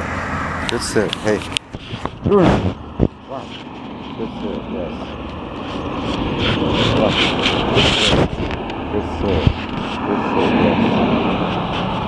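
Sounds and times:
motor vehicle drone: 0.0s - 12.0s.

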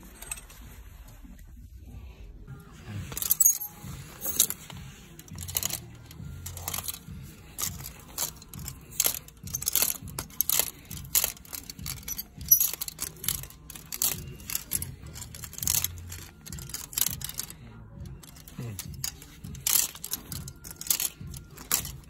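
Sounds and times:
clothes hangers clacking on rail: 3.1s - 22.0s.

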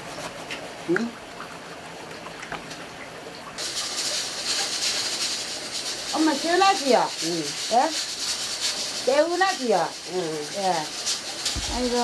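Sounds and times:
water rushing and rubbing wet hair: 0.0s - 12.0s.

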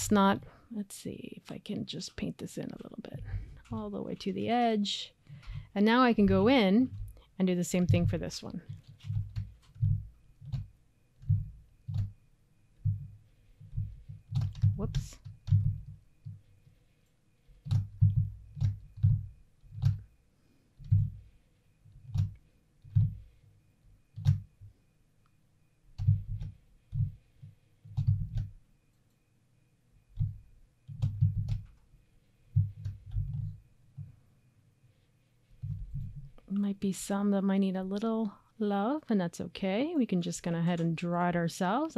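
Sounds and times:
keyboard key presses: 13.8s - 16.4s, 22.0s - 23.2s, 27.9s - 28.6s, 30.2s - 31.8s
computer mouse clicks: 27.9s - 29.2s.

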